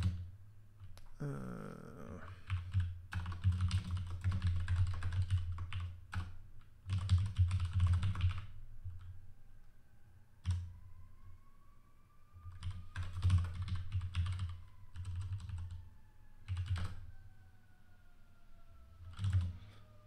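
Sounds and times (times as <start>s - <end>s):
computer keyboard typing: 0.0s - 0.2s, 2.2s - 9.1s, 10.4s - 10.7s, 12.5s - 15.8s, 16.4s - 17.0s, 19.1s - 19.5s.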